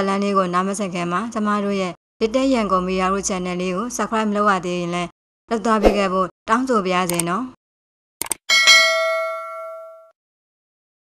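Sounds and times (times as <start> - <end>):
quick clicks: 7.1 - 7.3
bright bell ding: 8.5 - 10.2.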